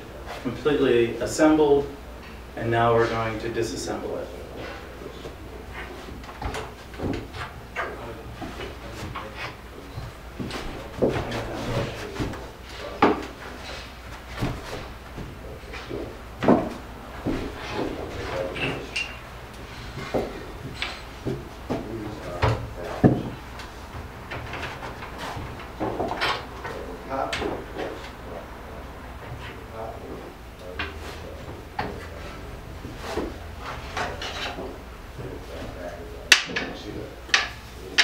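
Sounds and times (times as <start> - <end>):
wooden parts knocking and clattering: 6.0 - 12.4, 14.3 - 19.2, 19.9 - 28.2, 36.3 - 38.0.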